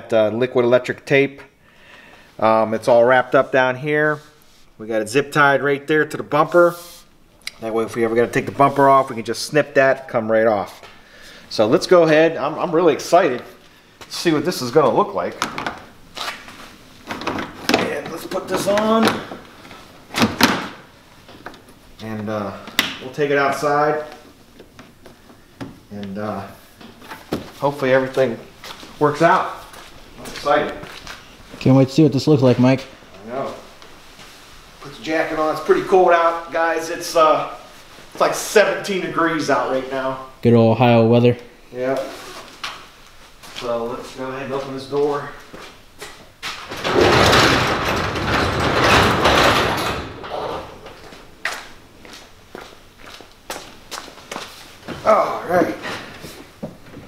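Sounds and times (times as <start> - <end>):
garage door rumbling open: 46.4 - 51.4.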